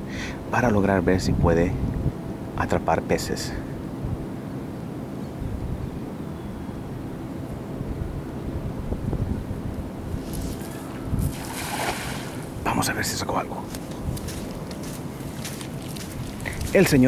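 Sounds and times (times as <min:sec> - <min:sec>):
wind buffeting microphone: 0:00.0 - 0:17.0
cast net splashing on water: 0:11.2 - 0:12.6.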